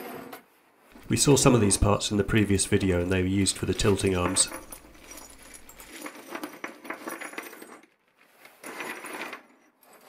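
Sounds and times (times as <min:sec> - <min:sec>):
plastic bag rustling: 0:00.9 - 0:06.3
metal tabs clinking: 0:01.0 - 0:06.2.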